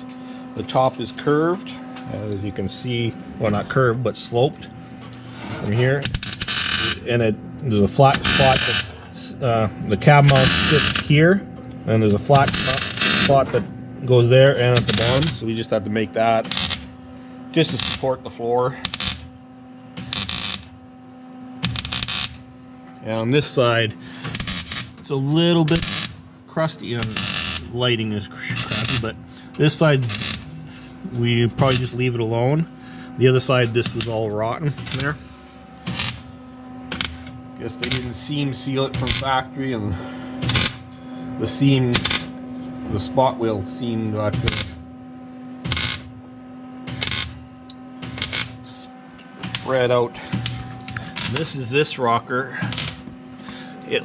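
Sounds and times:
steady hum: 0.0s - 54.0s
arc welding crackling bursts: 6.0s - 7.1s, 8.2s - 8.9s, 10.3s - 11.1s, 12.3s - 13.4s, 14.8s - 15.4s, 16.4s - 17.0s, 17.6s - 20.8s, 21.6s - 22.5s, 24.3s - 25.0s, 25.6s - 26.2s, 26.9s - 30.6s, 31.6s - 32.1s, 33.6s - 35.2s, 35.8s - 39.4s, 40.4s - 40.8s, 41.9s - 42.3s, 44.4s - 44.8s, 45.6s - 46.2s, 46.8s - 47.4s, 48.0s - 51.8s, 52.6s - 53.0s.

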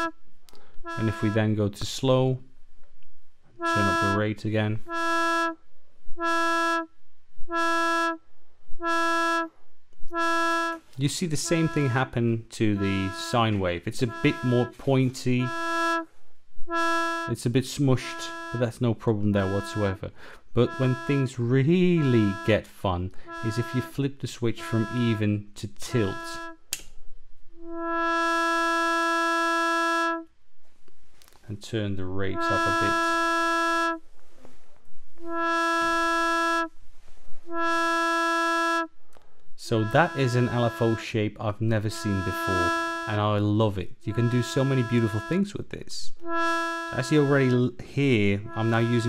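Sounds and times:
pulsing reedy synthesizer tone: 0.8s - 1.4s, 3.6s - 4.1s, 4.8s - 5.6s, 7.5s - 8.2s, 10.1s - 10.8s, 14.0s - 14.8s, 15.5s - 16.1s, 16.7s - 17.3s, 18.2s - 18.7s, 20.6s - 21.4s, 22.0s - 22.5s, 23.2s - 23.9s, 24.6s - 25.2s, 26.0s - 26.6s, 27.6s - 30.2s, 32.4s - 34.0s, 35.2s - 36.7s, 37.5s - 38.9s, 39.7s - 41.0s, 41.9s - 43.1s, 46.2s - 47.6s, 48.4s - 49.0s
synthesizer drone: 18.2s - 18.7s, 20.6s - 21.3s, 27.6s - 30.2s, 46.2s - 47.6s, 48.4s - 49.0s.

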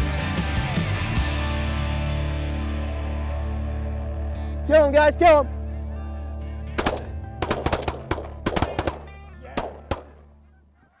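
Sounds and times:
shotgun fire: 6.8s - 10.2s
geese honking: 8.7s - 11.0s.

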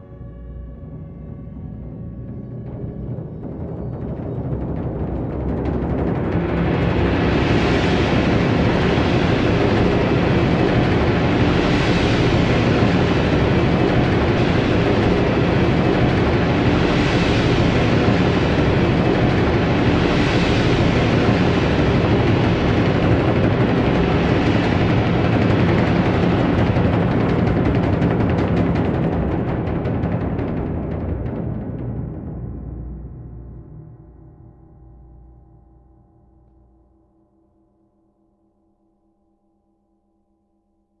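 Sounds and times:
rolled timpani and percussion: 1.2s - 33.6s.

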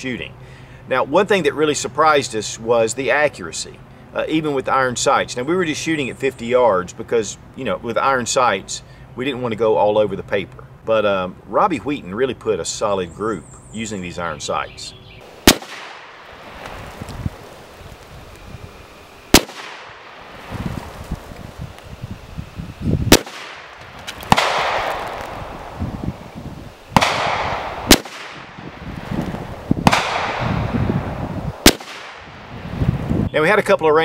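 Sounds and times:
rifle shots with echo: 15.3s - 16.6s, 19.3s - 20.4s, 23.1s - 25.8s, 26.9s - 28.8s, 29.8s - 32.5s.

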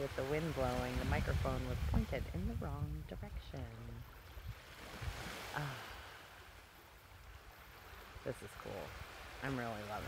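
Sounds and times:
surf washing over pebbles: 0.0s - 3.0s, 3.7s - 10.0s
wind rumble on microphone: 0.0s - 6.2s.

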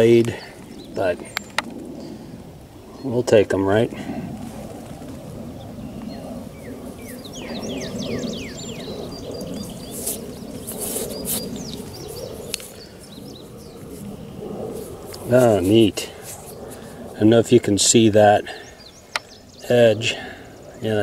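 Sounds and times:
small birds chirping: 0.0s - 3.5s, 5.3s - 21.0s
steady low outdoor noise: 0.0s - 21.0s.

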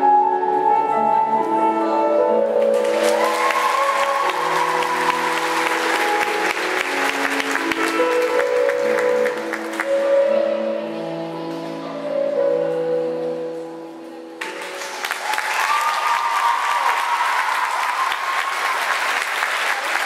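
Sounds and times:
recorded music: 0.0s - 15.3s
audience clapping: 2.6s - 10.0s, 14.4s - 20.0s.

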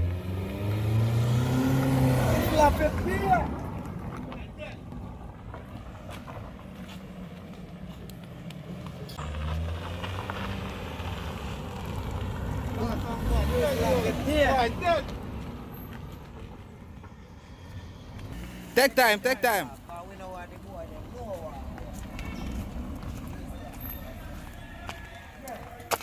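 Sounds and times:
car engine passing slowly: 0.0s - 26.0s
raised voices: 12.6s - 15.2s, 17.6s - 26.0s.

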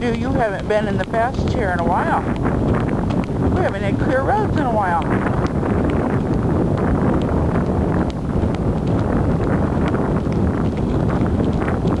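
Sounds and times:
light irregular taps: 0.0s - 12.0s
wind buffeting microphone: 0.0s - 12.0s.

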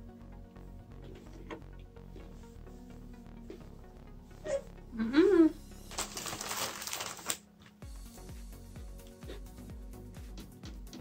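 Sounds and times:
background music with steady beat: 0.0s - 11.0s
plastic packaging crinkling: 5.9s - 7.5s.

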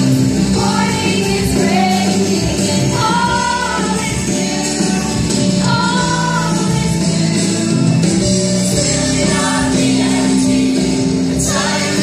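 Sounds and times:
group of voices singing: 0.0s - 7.8s, 8.6s - 12.0s
loud music: 0.0s - 12.0s.

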